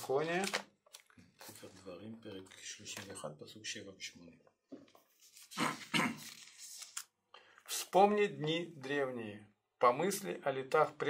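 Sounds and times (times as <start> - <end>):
thin pages turning: 4.7 - 7.1.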